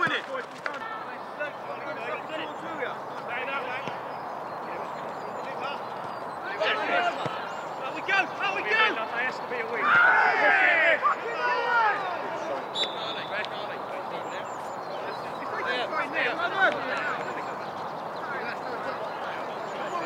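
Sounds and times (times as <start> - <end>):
open-air background noise: 0.0 - 20.0
men shouting: 6.4 - 7.2, 9.8 - 12.6.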